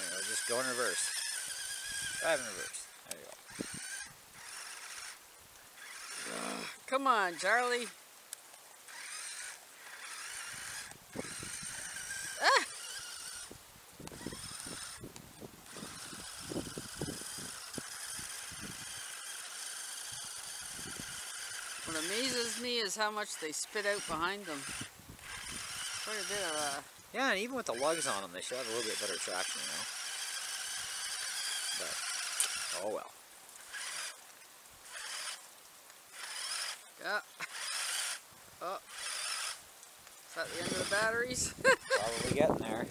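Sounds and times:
electric motor whining: 0.0s - 7.9s, 8.8s - 39.6s, 40.3s - 42.9s.

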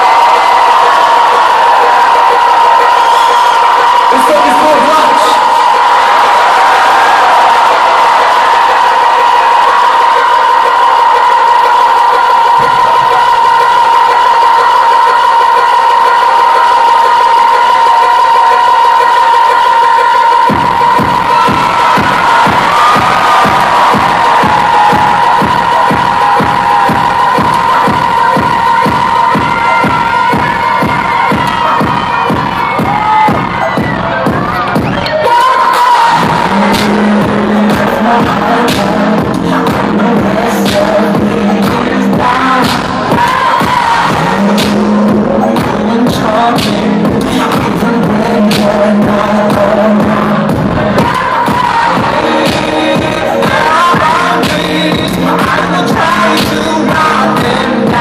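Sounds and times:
crowd cheering: 0.0s - 58.0s
electronic dance music: 0.0s - 58.0s
kick drum beat: 5.5s - 19.7s, 20.3s - 35.0s, 36.2s - 58.0s.

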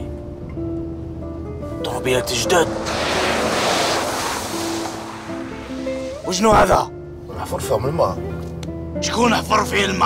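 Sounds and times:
background music: 0.0s - 10.0s
tyres splashing through puddle: 2.1s - 6.8s.

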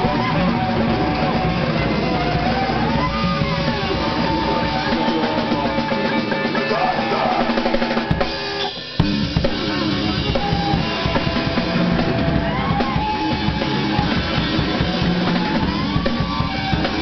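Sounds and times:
band playing extreme music live: 0.0s - 17.0s
drum kit: 0.0s - 17.0s.

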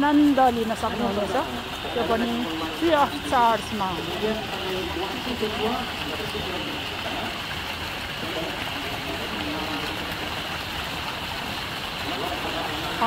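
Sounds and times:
fountain water splashing into pool: 0.0s - 13.0s.

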